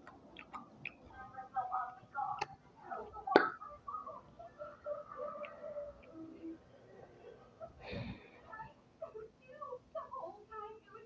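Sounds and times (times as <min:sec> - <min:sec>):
faint voice-like murmuring: 0:01.1 - 0:11.0.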